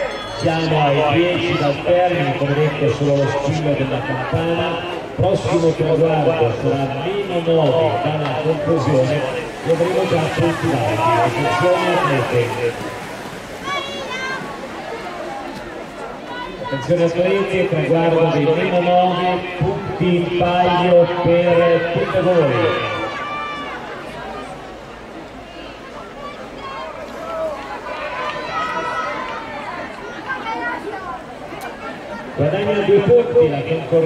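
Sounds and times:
people speaking: 0:00.0 - 0:23.0
crowd chatter: 0:00.0 - 0:34.0
outdoor background noise: 0:00.0 - 0:34.0.

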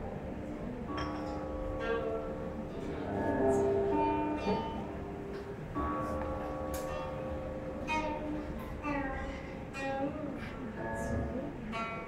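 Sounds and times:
plucked zither notes: 0:00.0 - 0:12.0.

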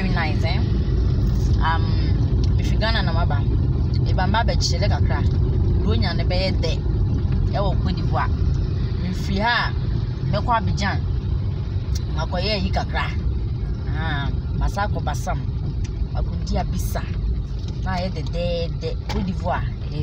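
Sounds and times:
car cabin road and engine rumble: 0:00.0 - 0:20.0.

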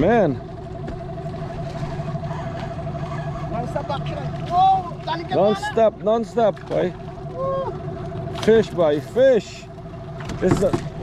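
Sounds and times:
outboard motor humming: 0:00.0 - 0:11.0.

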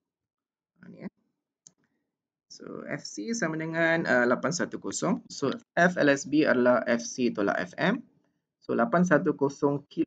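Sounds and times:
person speaking: 0:02.5 - 0:10.0.

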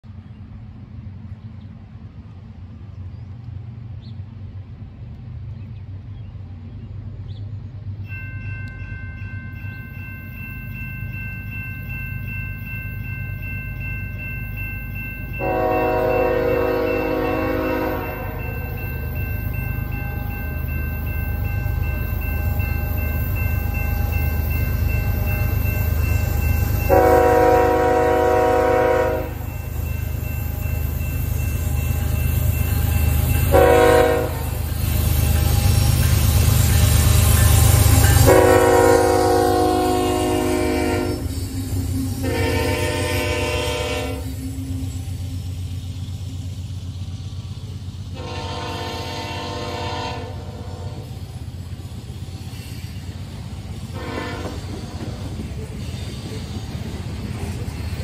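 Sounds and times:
diesel locomotive engine rumble: 0:00.0 - 0:58.0
rolling train cars: 0:00.0 - 0:58.0
train air horn blasts: 0:15.4 - 0:18.6, 0:26.9 - 0:29.4, 0:33.5 - 0:34.7, 0:38.2 - 0:41.4, 0:42.2 - 0:44.4, 0:48.2 - 0:51.1, 0:53.9 - 0:55.1.

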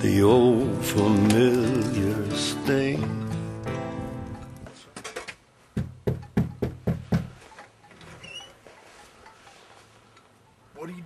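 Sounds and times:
fist knocking on door: 0:05.8 - 0:07.4.

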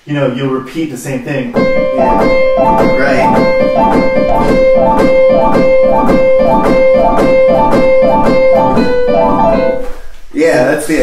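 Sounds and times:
digital piano playing: 0:01.5 - 0:11.0.

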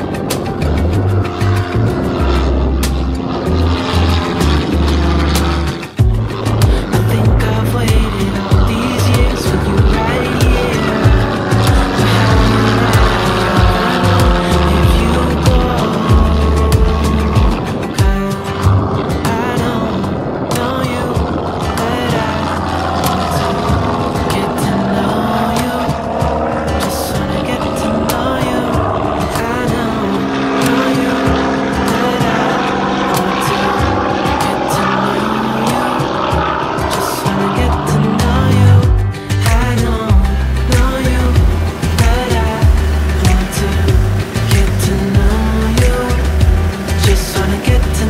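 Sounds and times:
pop song: 0:00.0 - 0:48.0
propeller airplane engine drone: 0:00.0 - 0:48.0.

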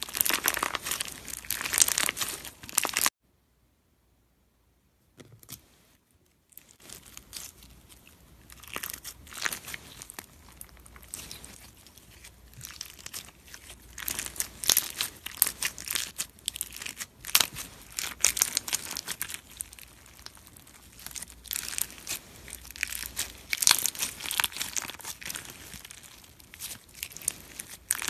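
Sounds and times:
slime crackling between fingers: 0:00.0 - 0:03.1, 0:06.6 - 0:28.0.

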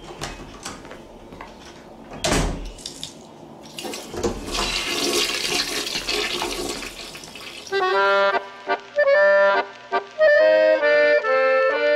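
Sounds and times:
toilet flushing: 0:03.6 - 0:07.7.

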